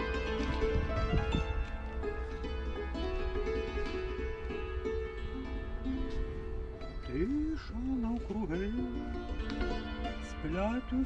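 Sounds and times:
hammered dulcimer ringing notes: 0:00.0 - 0:07.0, 0:09.1 - 0:11.0
person singing slow melody: 0:07.0 - 0:11.0.

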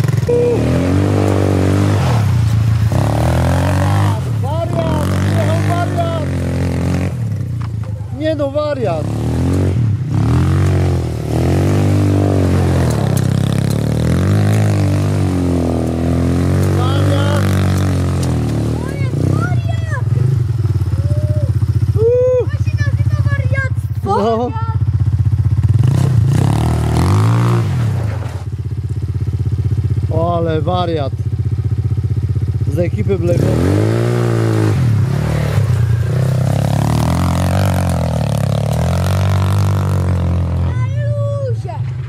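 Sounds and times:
voices calling out: 0:00.0 - 0:06.5
quad engine revving: 0:00.0 - 0:28.5, 0:30.9 - 0:41.1.

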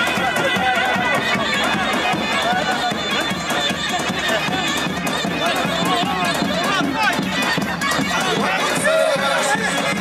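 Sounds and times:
percussion: 0:00.0 - 0:10.0.

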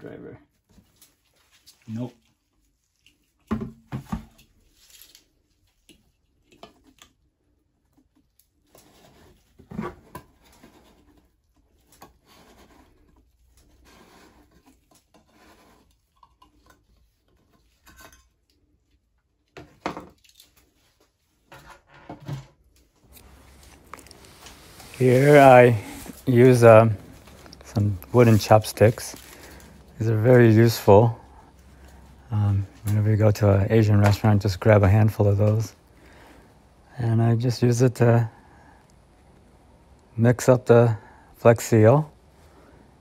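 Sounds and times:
faint scraping: 0:23.1 - 0:34.0.

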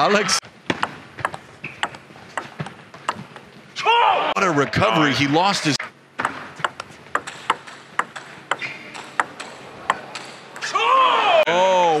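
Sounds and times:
table tennis ball ticking: 0:01.2 - 0:03.5, 0:06.2 - 0:10.6
man commentating: 0:04.2 - 0:05.8.

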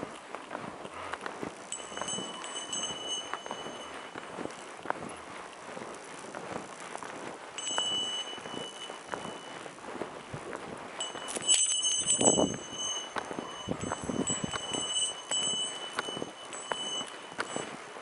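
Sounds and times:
footsteps crunching in snow: 0:00.0 - 0:18.0
high metallic ring: 0:01.7 - 0:04.7, 0:07.6 - 0:09.8, 0:11.0 - 0:17.9.

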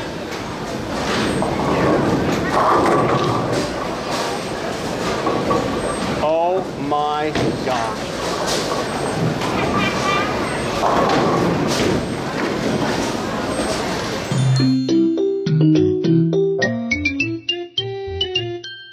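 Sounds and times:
bowling balls rumbling: 0:00.8 - 0:14.1.

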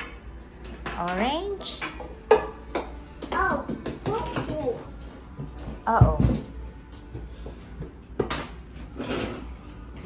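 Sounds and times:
plastic toys rubbing and scraping: 0:08.4 - 0:10.0.

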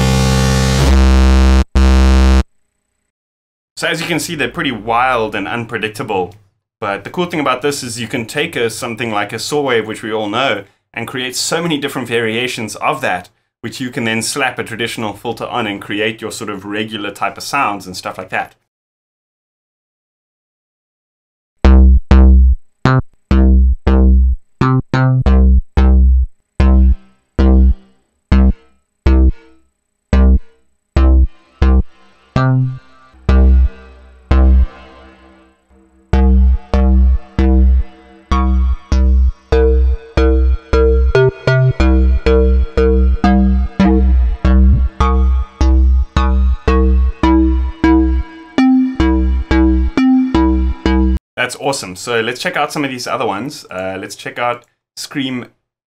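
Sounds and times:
plucked synthesizer notes: 0:00.0 - 0:02.4, 0:21.6 - 0:51.2.

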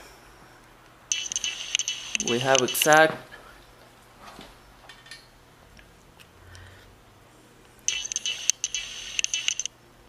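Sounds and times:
high electronic tone: 0:01.1 - 0:02.9, 0:07.9 - 0:09.7
rapid clicking: 0:01.1 - 0:03.0, 0:07.9 - 0:09.7.

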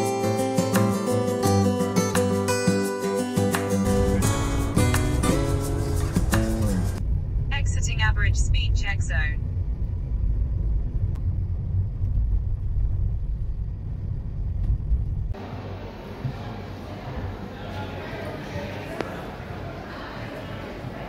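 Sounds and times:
guitar background music: 0:00.0 - 0:07.0
car road and engine rumble: 0:03.8 - 0:15.5.

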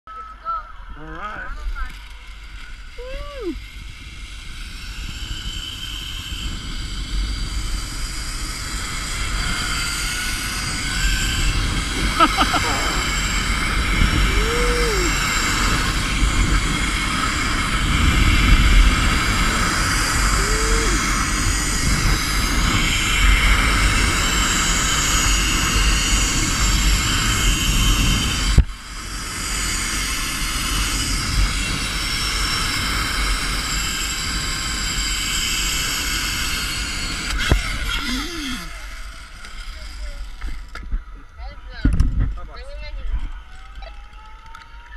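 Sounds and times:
zipline pulleys whirring on cable: 0:01.1 - 0:41.6, 0:42.4 - 0:44.9
wind rush on microphone: 0:02.3 - 0:39.2, 0:40.5 - 0:43.5.

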